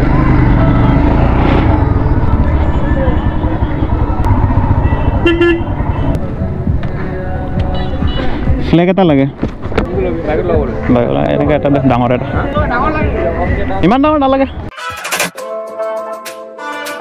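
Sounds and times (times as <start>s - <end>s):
motorcycle engine running: 0.0s - 6.9s
horn toot: 4.8s - 6.1s.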